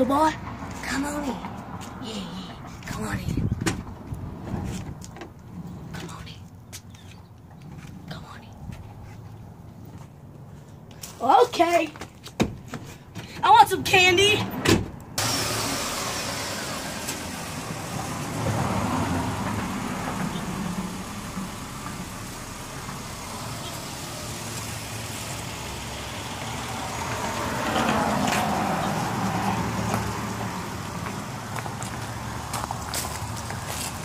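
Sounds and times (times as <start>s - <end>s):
van engine idling: 15.2s - 34.0s.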